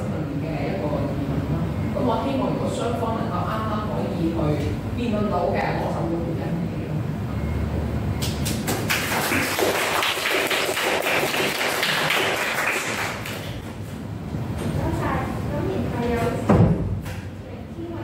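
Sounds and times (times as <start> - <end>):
people applauding: 8.2 - 13.7.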